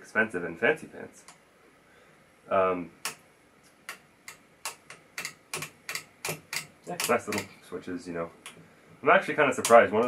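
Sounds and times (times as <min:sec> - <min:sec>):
switch clicking: 0:03.8 - 0:07.6.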